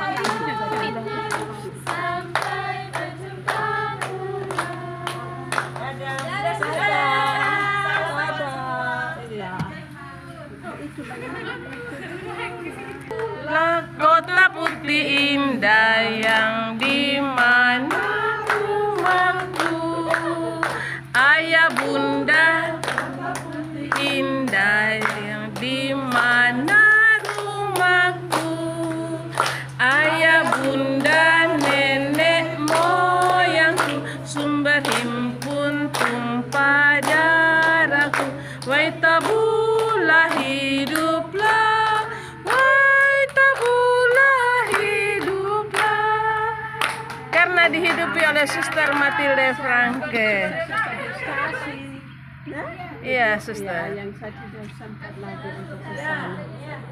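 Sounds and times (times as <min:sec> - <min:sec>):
hand claps: 0:00.0 - 0:07.7, 0:16.2 - 0:50.2
women singing unaccompanied: 0:00.0 - 0:10.2, 0:12.2 - 0:56.9.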